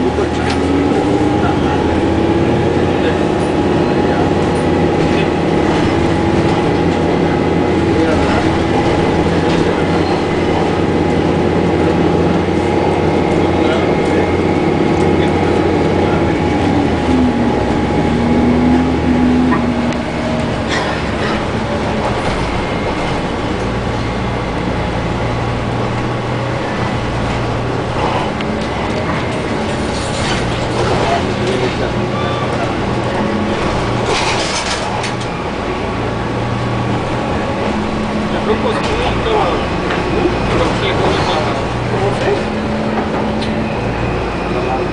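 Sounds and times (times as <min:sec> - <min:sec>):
bus drivetrain hum with whining: 0:00.0 - 0:44.9
road noise: 0:00.0 - 0:44.9.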